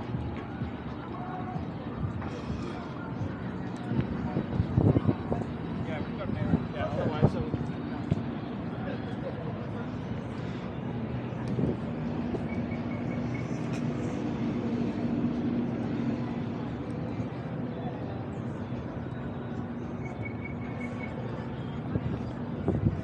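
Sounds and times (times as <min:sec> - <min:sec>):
city street noise: 0:00.0 - 0:23.0
faint distant voices: 0:00.0 - 0:23.0
low steady hum: 0:00.0 - 0:23.0.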